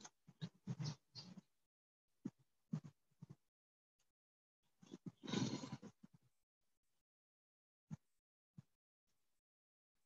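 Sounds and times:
horse blowing through nostrils: 5.2s - 6.0s.

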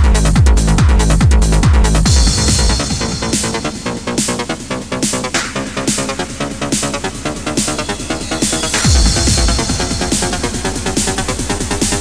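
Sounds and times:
heavy bass hit: 0.0s - 8.0s, 8.6s - 12.0s
trance music with pulsing beat: 0.0s - 12.0s.

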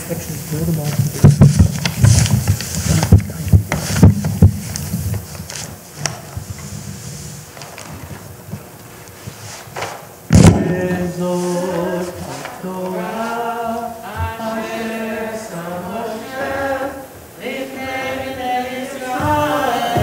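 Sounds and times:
knocks and rustling of scroll: 0.9s - 12.6s
loud thump: 10.3s - 11.1s.

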